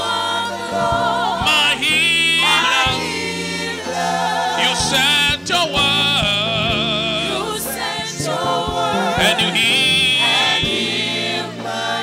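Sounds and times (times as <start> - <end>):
band with bass line: 0.0 - 12.0
voices singing held notes: 0.0 - 12.0.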